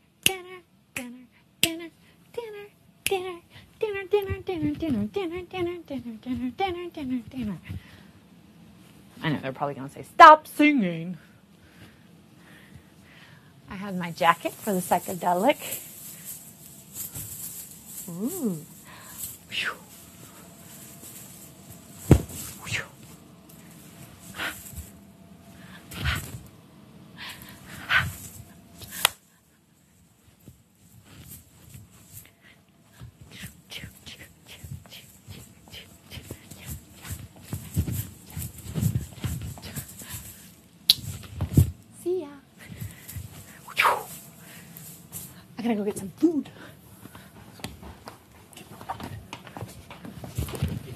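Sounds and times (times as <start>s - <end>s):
fabric rustling: 13.9s - 26.5s, 27.4s - 41.9s, 42.6s - 45.6s
woman whining: 18.1s - 18.8s
dance step thumps: 22.0s - 22.9s.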